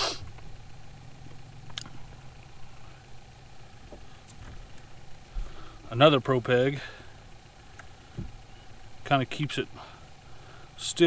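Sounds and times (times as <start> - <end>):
low motor hum: 0.0 - 11.0.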